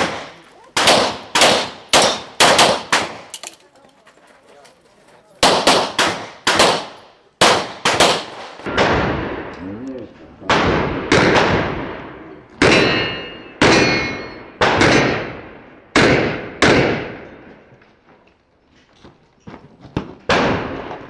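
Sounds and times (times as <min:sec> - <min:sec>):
rapid pistol shots with echo: 0:00.0 - 0:03.3, 0:05.4 - 0:09.5, 0:10.4 - 0:17.5, 0:20.2 - 0:21.0.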